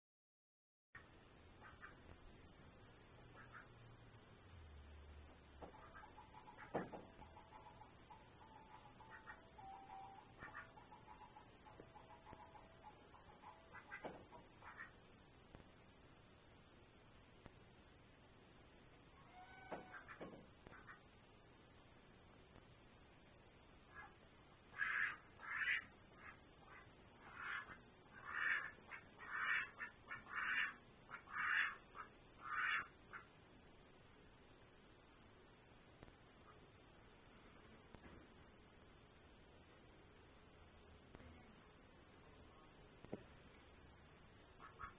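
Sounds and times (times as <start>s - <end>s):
duck quacking: 1.6s - 2.0s, 3.3s - 3.8s, 5.6s - 15.0s, 19.2s - 21.0s, 23.9s - 33.3s, 44.6s - 44.9s.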